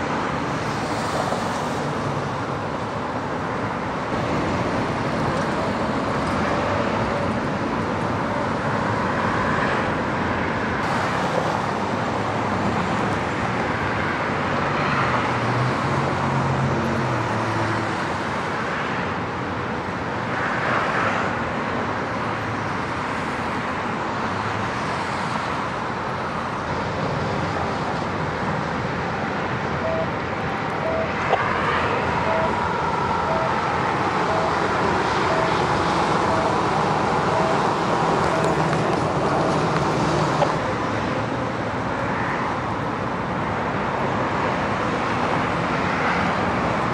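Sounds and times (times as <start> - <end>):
freeway traffic noise: 0.0 - 46.9
vehicles passing: 0.0 - 46.9
faint short beeps: 29.8 - 30.1, 30.8 - 31.2, 32.2 - 32.6, 33.3 - 33.6, 34.3 - 34.6, 35.3 - 35.6, 38.2 - 38.6.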